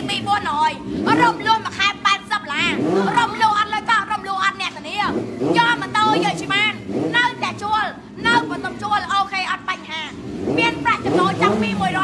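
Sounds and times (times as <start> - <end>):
person talking quickly: 0.0 - 12.0.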